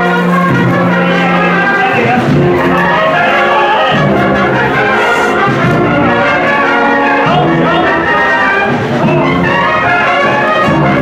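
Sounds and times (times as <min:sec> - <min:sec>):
brass band playing march: 0:00.0 - 0:11.0.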